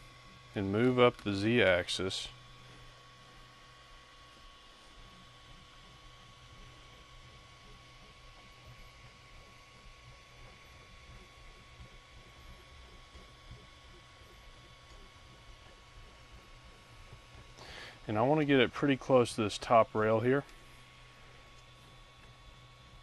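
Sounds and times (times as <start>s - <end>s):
faint electrical hum: 0.0s - 23.0s.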